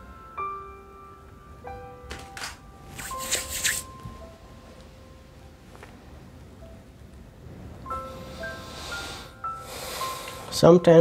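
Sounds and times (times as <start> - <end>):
soft background music: 0.0 - 11.0
palms rubbing together: 3.0 - 3.9.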